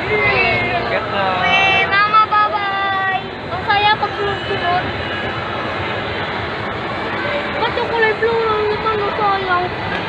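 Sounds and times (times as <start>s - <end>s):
steady rushing noise: 0.0s - 10.0s.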